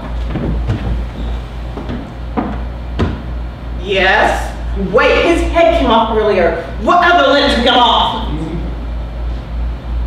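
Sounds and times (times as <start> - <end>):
wooden chair shifting on floor: 0.0 - 3.3
steady low hum: 0.0 - 10.0.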